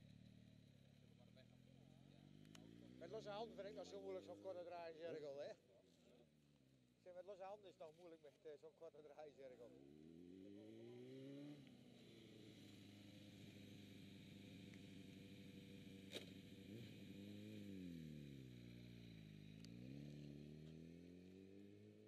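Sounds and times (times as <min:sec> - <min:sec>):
motorcycle engine revving: 0:09.7 - 0:22.0.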